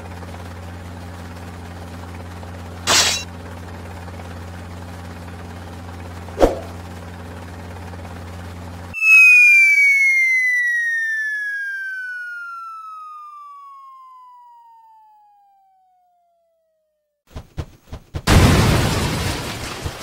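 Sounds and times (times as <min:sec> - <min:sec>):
cartoon falling whistle: 0:09.0 - 0:15.8.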